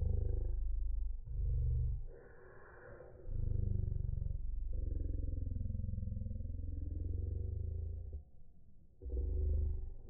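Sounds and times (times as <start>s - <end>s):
low pulsing mechanical rumble: 0.0s - 2.3s, 3.2s - 8.4s, 9.0s - 10.0s.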